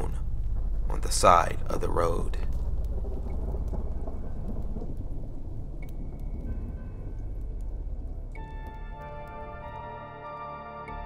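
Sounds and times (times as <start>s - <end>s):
drops ticking: 0.0s - 9.9s
low rumbling thunder: 0.0s - 9.9s
steady rain hiss: 0.0s - 10.2s.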